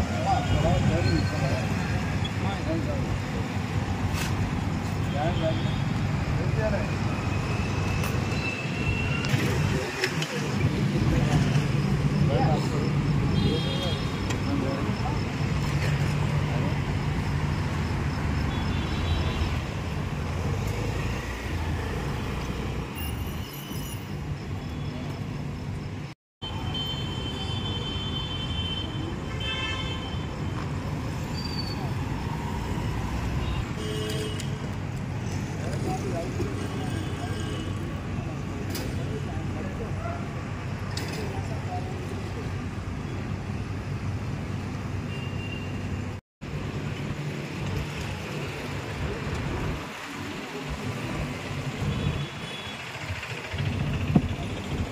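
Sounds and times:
motorbike engines rumbling: 0:00.0 - 0:22.8, 0:34.6 - 0:44.7, 0:46.6 - 0:54.9
people talking: 0:09.3 - 0:15.5, 0:35.6 - 0:40.3.

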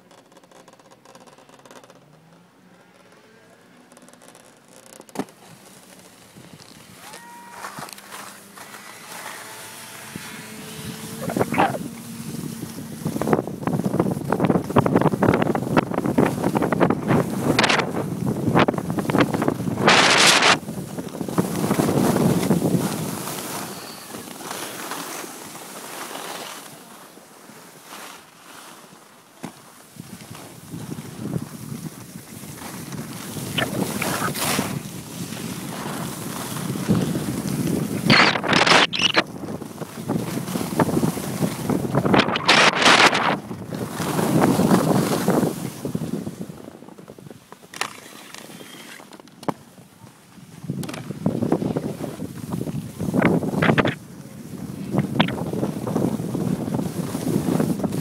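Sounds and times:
skis scraping over snow: 0:02.8 - 0:58.0
wind buffeting microphone: 0:09.8 - 0:24.2, 0:30.0 - 0:47.5, 0:50.4 - 0:58.0.

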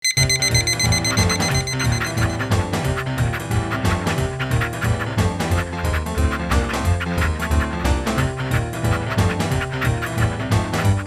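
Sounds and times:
alarm clock beeping: 0:00.0 - 0:03.0
music with bass beat: 0:00.2 - 0:11.0.

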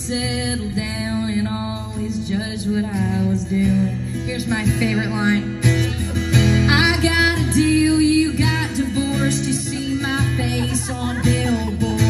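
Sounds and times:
acoustic guitar: 0:00.0 - 0:12.0
bass backing: 0:00.0 - 0:12.0
person singing: 0:06.7 - 0:12.0.

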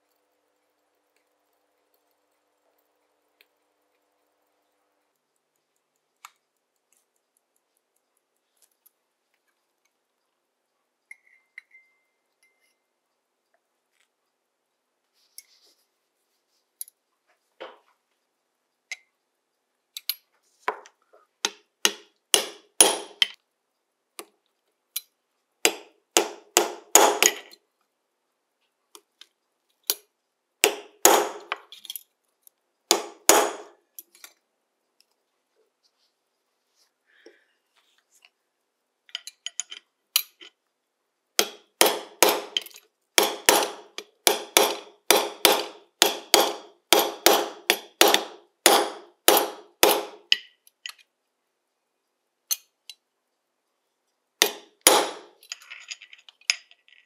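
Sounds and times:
hammer tapping metal punch: 0:21.5 - 0:23.4, 0:25.6 - 0:27.5, 0:30.6 - 0:31.6, 0:32.9 - 0:33.8, 0:41.4 - 0:50.5, 0:54.4 - 0:55.4.

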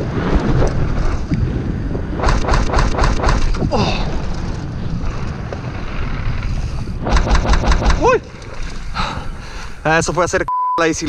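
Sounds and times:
bike tyres rumbling on dirt: 0:00.0 - 0:09.2
wind on microphone: 0:00.0 - 0:09.4.

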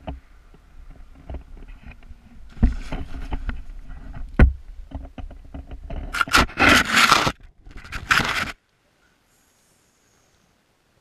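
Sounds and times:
harness scraping through snow: 0:06.1 - 0:08.6.

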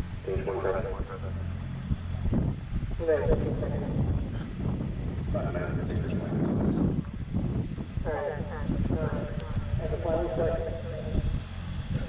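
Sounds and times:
indistinct voices talking: 0:00.0 - 0:12.0
steady low rumble: 0:00.0 - 0:12.0.

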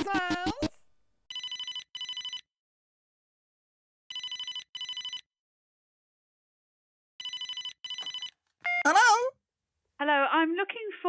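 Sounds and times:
telephone ringing: 0:01.3 - 0:02.5, 0:04.1 - 0:05.3, 0:07.2 - 0:09.2.

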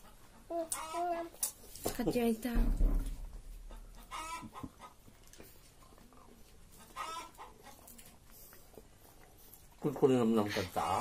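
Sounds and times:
faint chicken calls: 0:00.0 - 0:01.4, 0:03.5 - 0:05.1, 0:06.7 - 0:07.9.

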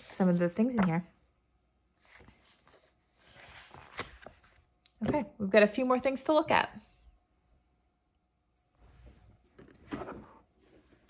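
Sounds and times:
paper rustling: 0:02.0 - 0:04.6.

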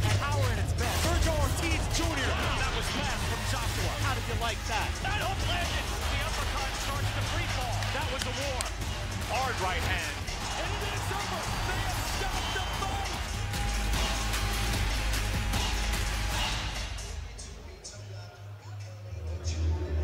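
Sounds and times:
music with heavy bass: 0:00.0 - 0:18.3.

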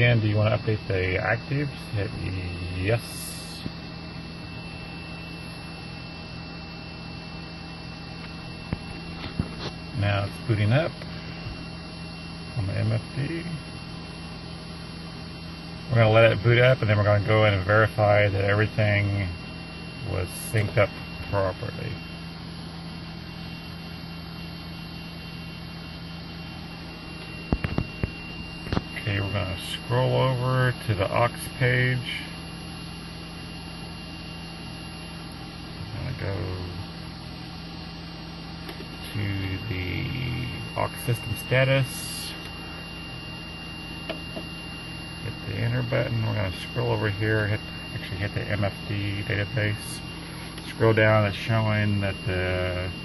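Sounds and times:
electrical hum of avionics: 0:00.0 - 0:53.0
thin high whine: 0:00.0 - 0:53.0.

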